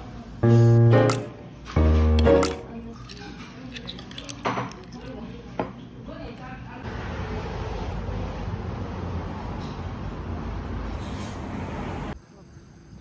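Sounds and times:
spoon clinking stone pot: 0:02.2 - 0:04.9
passing road traffic: 0:06.9 - 0:12.2.

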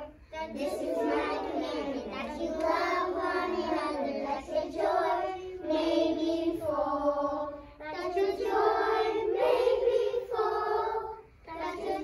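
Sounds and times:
children singing in unison: 0:00.0 - 0:12.0.

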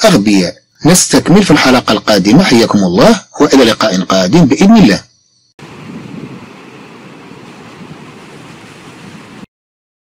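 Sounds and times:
steady rushing noise: 0:05.6 - 0:09.5.

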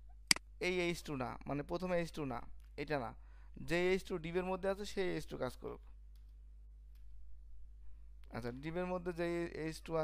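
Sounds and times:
low electrical hum: 0:00.0 - 0:10.0
man speaking: 0:08.3 - 0:10.0.

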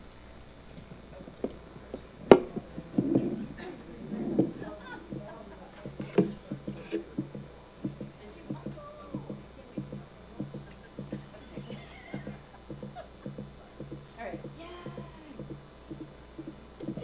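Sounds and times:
faint murmured voices: 0:00.0 - 0:17.0
soft footsteps: 0:00.0 - 0:17.0.

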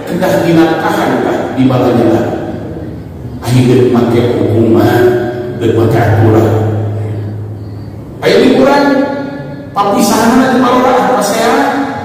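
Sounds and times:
man's amplified voice echoing: 0:00.0 - 0:12.0
steady low hum: 0:00.0 - 0:12.0.

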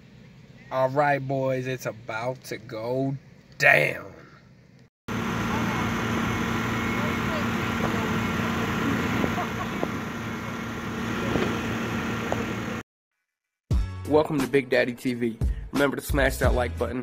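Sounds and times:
machine hum: 0:05.1 - 0:12.8.

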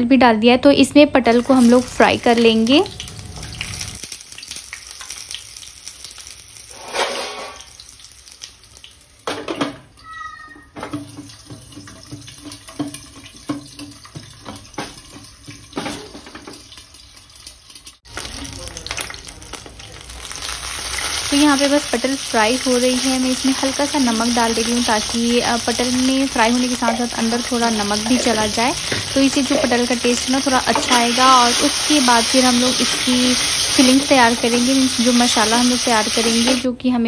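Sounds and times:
gourds sizzling in hot oil: 0:01.2 - 0:36.7.

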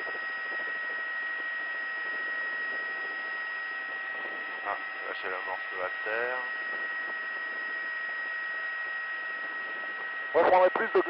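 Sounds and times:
high-pitched whine: 0:00.0 - 0:11.0
intercom hiss: 0:10.3 - 0:11.0.

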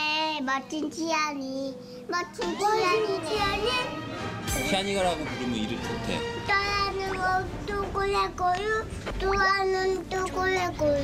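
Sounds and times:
child singing a sing-song chant: 0:06.4 - 0:11.0.

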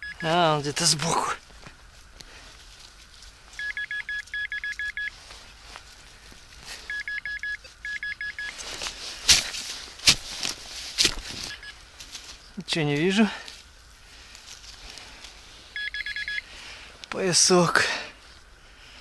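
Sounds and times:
metal detector pinpointer beeping: 0:00.0 - 0:00.4, 0:03.6 - 0:05.2, 0:06.9 - 0:08.6, 0:11.4 - 0:11.8, 0:15.8 - 0:16.5.

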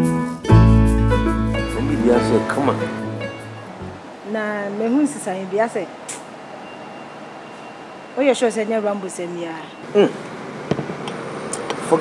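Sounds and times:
hissing consonant: 0:00.8 - 0:05.8.

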